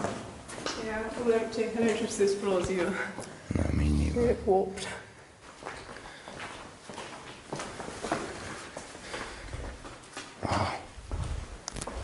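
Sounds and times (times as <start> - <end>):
footsteps on hard floor: 5.4 - 10.4, 11.0 - 12.0.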